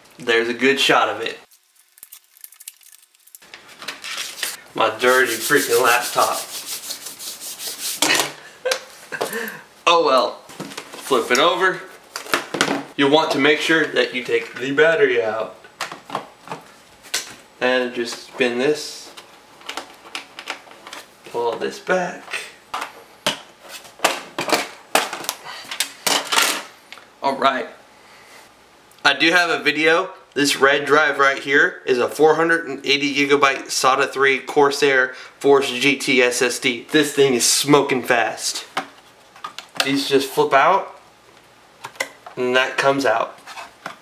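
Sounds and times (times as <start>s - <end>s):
plastic blister pack torn open: 1.5s - 3.4s.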